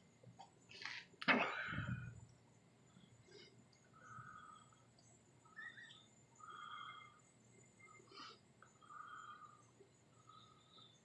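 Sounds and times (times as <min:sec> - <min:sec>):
sliding chirp: 0:05.4 - 0:07.2.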